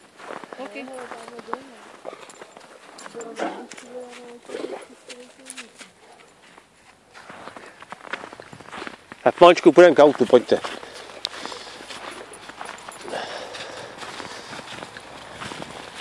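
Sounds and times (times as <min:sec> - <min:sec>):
footsteps crunching in snow: 0:00.0 - 0:16.0.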